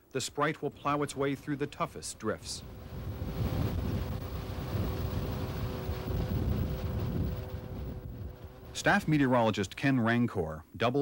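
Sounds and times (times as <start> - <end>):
snowcat engine low rumble: 0.3 - 10.2
wind buffeting microphone: 0.9 - 9.8.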